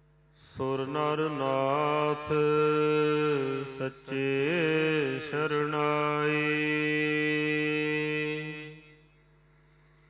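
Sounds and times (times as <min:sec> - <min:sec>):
person chanting: 0:00.5 - 0:09.0.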